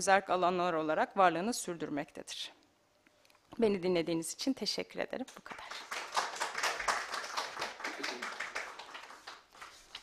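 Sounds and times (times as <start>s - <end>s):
small audience clapping: 5.3s - 10.0s.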